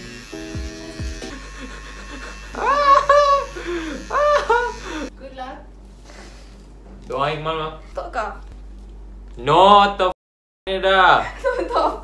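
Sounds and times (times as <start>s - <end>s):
electric hair clippers buzzing: 0.0s - 5.1s
high-pitched squealing laughs: 1.3s - 5.1s.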